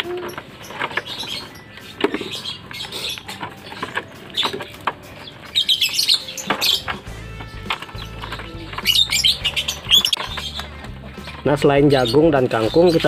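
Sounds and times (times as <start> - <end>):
lovebirds chirping: 0.0 - 13.0.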